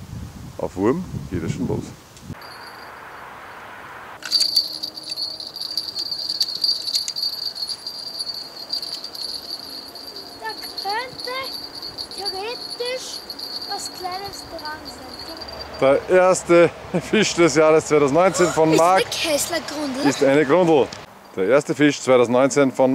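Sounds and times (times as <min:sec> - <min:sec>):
small bell jingling: 0:02.4 - 0:03.2, 0:04.2 - 0:16.2.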